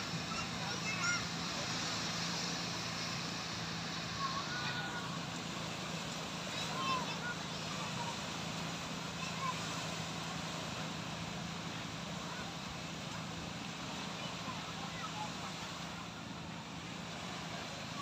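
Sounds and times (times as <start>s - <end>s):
small waves breaking on sand: 0.0s - 18.0s
distant people calling out: 0.1s - 10.4s.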